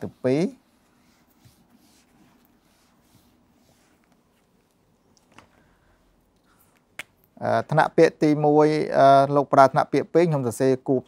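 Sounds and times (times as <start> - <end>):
man speaking: 0.0 - 0.6, 7.4 - 11.0.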